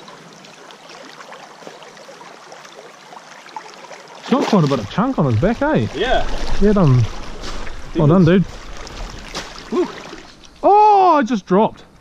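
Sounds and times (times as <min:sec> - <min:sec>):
small water splashes: 0:00.0 - 0:11.0
stream running over stones: 0:00.0 - 0:11.7.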